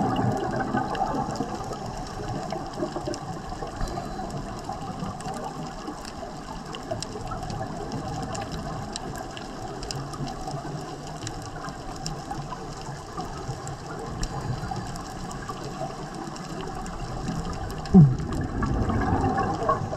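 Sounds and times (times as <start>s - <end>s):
underwater rush of water: 0.0s - 19.9s
faint clicks: 0.1s - 19.9s.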